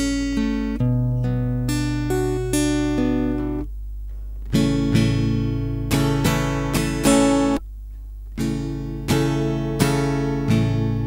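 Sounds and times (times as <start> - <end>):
fingerpicked acoustic guitar: 0.0 - 11.0
steady low hum: 0.0 - 11.0.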